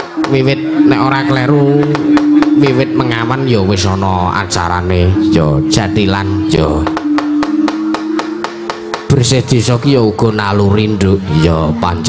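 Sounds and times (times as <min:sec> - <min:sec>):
soft gamelan tones: 0:00.0 - 0:12.0.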